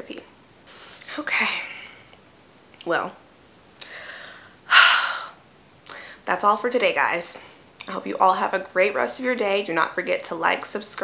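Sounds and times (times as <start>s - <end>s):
woman speaking: 0.0s - 0.3s, 1.1s - 2.0s, 2.8s - 3.2s, 6.2s - 11.0s
woman breathing: 3.8s - 6.3s.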